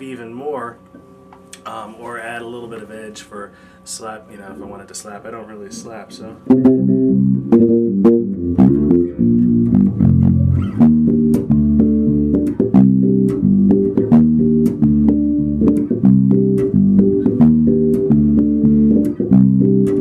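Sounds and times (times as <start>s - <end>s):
electric bass plucked notes: 6.4s - 20.0s.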